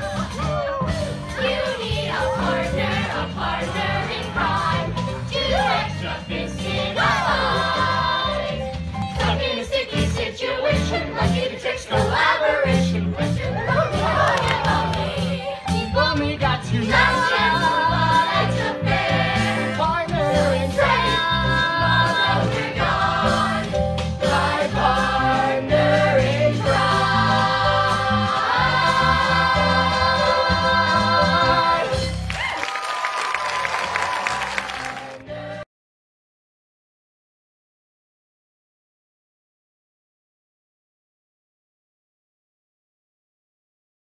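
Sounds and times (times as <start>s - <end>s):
group singing and shouting: 0.0s - 32.3s
musical accompaniment with bass line: 0.0s - 32.6s
applause: 32.2s - 35.3s.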